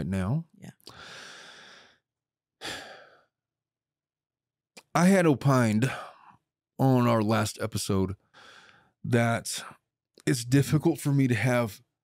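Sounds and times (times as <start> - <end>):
person breathing into microphone: 0.9 - 2.0.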